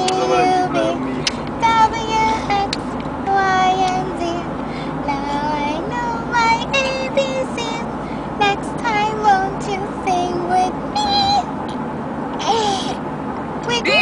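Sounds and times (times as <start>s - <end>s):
car road noise: 0.0s - 14.0s
toddler singing and squealing: 13.7s - 14.0s.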